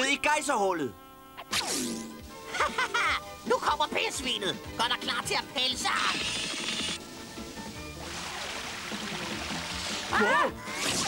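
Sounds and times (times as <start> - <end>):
background music: 0.0 - 11.0
cartoon rushing noise: 1.4 - 2.1, 9.9 - 11.0
cartoon geyser spraying: 1.4 - 3.8, 5.6 - 7.0, 7.6 - 11.0.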